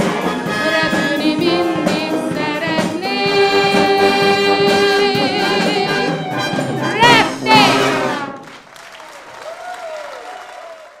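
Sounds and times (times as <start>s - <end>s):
wind band and choir chord: 3.0s - 8.5s
audience applause: 7.7s - 11.0s.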